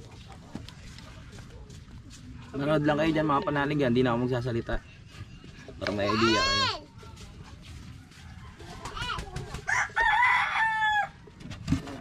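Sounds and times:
rooster crowing: 0:08.4 - 0:11.2.

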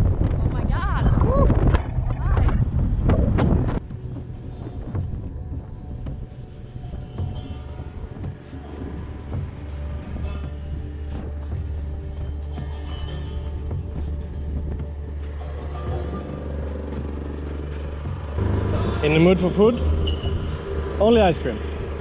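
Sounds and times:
background music: 0:00.0 - 0:22.0
steady low hum: 0:01.5 - 0:22.0.

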